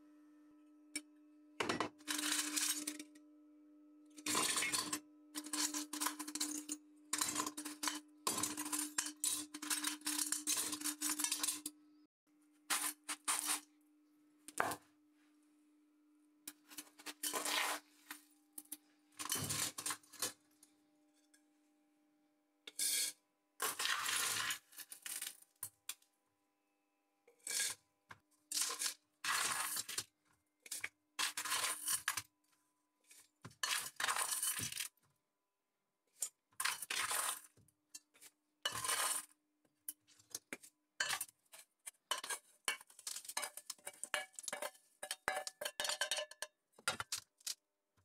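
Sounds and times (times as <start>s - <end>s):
metal scraps clinking in steel bowl: 1.7s - 3.1s, 4.2s - 11.7s, 19.2s - 20.4s, 30.7s - 32.2s, 33.6s - 35.0s, 36.2s - 39.3s, 39.9s - 47.6s
copper scraps clinking: 41.9s - 47.6s.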